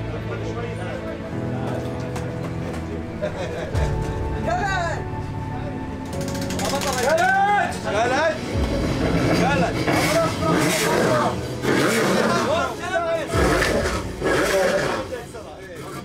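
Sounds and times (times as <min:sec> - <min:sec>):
background music: 0:00.0 - 0:16.0
people talking: 0:09.3 - 0:16.0.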